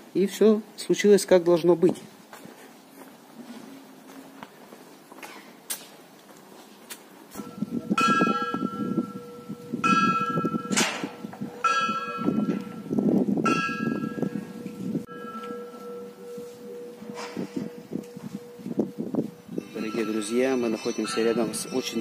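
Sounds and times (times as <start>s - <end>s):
higher church bell strokes: 7.4s - 22.0s
steady lower bell tone: 7.4s - 22.0s.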